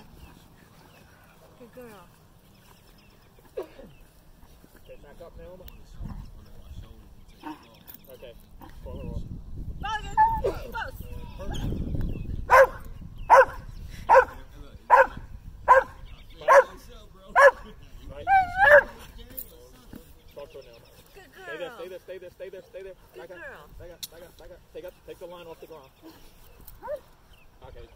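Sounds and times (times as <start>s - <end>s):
dog barking sharply: 12.5s - 15.1s, 15.7s - 15.9s.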